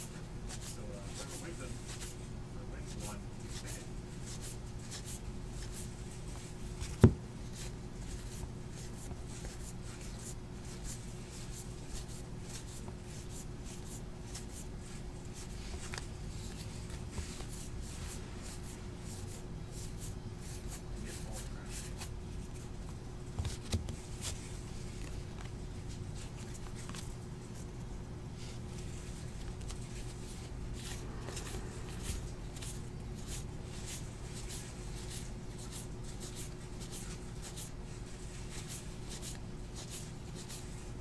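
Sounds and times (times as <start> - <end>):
steady low hum: 0.0 - 41.0.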